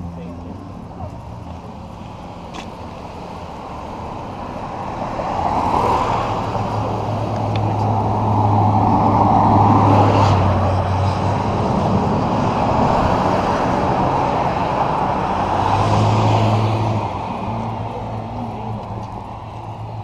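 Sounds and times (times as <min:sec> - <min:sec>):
engine hum: 0:00.0 - 0:20.0.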